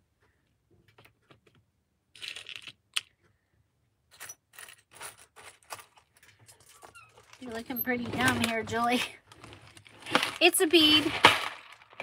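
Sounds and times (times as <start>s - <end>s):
plastic packets rustling: 4.6s - 12.0s.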